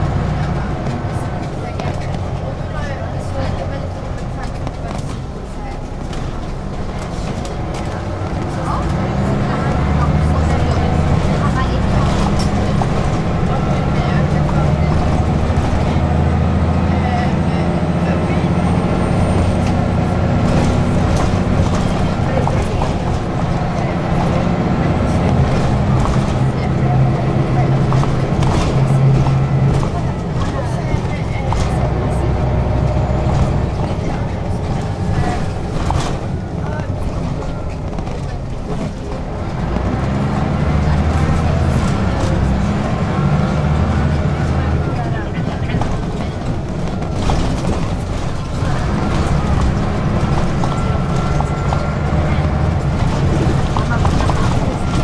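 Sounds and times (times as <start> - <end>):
bus engine hum: 0.0 - 55.0
road noise: 0.0 - 55.0.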